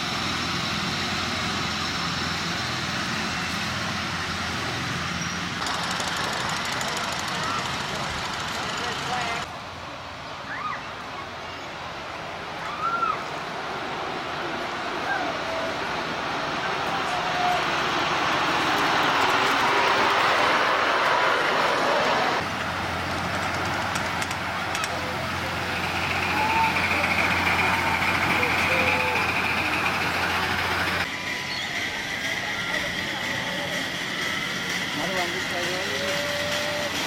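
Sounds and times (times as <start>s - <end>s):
miniature trains running on track: 0.0s - 10.6s, 11.3s - 37.0s.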